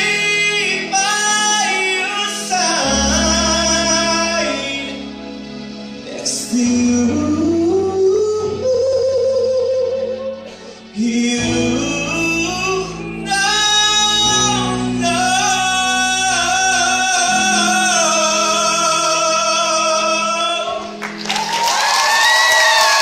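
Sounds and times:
man singing pop ballad: 0.0 - 5.4, 6.0 - 21.0
audience applause and cheering: 20.9 - 23.0.

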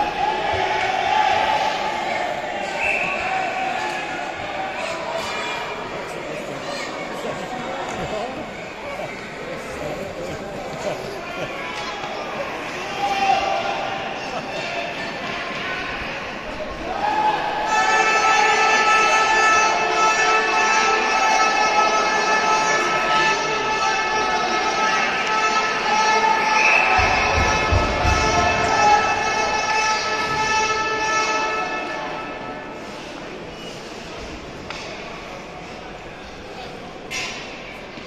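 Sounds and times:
music over public address echoing: 17.7 - 33.4.

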